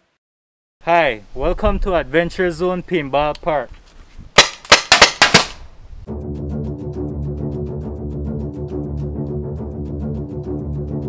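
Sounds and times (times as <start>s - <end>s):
paintball marker shots popping: 4.4s - 5.7s
background music with steady beat: 6.1s - 11.0s.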